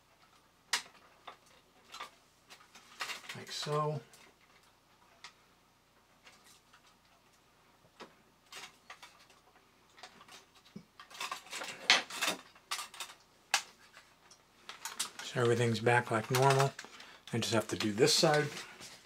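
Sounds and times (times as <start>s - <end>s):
clicks and taps of toy parts: 16.2s - 17.0s.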